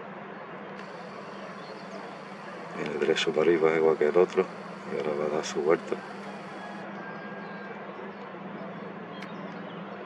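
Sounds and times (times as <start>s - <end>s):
background hiss: 0.8s - 6.8s.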